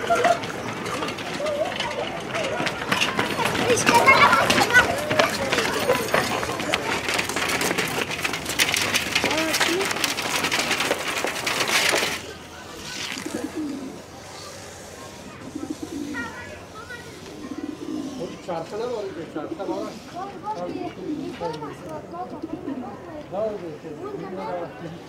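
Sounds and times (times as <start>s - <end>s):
children's voices: 0.0s - 8.2s, 9.1s - 23.3s, 24.0s - 25.0s
pigeon cooing: 12.9s - 16.6s, 17.3s - 18.6s, 20.6s - 21.5s, 22.3s - 23.0s.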